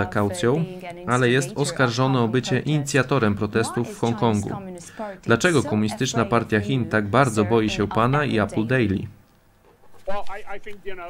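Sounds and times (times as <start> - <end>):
man speaking: 0.0 - 9.2.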